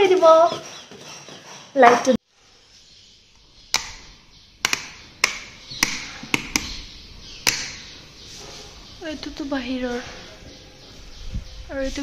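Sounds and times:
light switches clicking: 3.7s - 8.0s.

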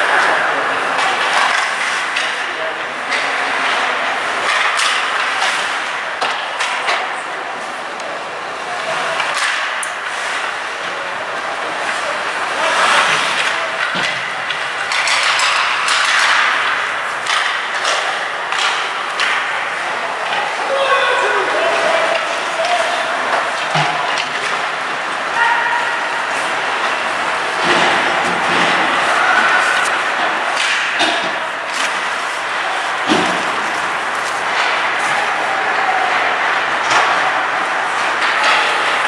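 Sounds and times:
hockey sticks clacking on puck: 0.0s - 39.0s
skates scraping ice: 0.0s - 39.0s
players shouting: 17.4s - 39.0s.

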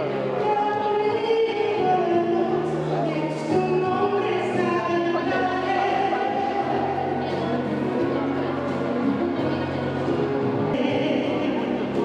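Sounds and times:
instrumental accompaniment with bass: 0.0s - 12.0s.

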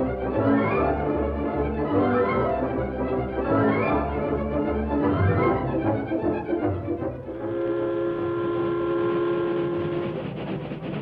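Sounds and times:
train clattering: 5.0s - 11.0s
steam locomotive whistle: 7.3s - 10.5s.

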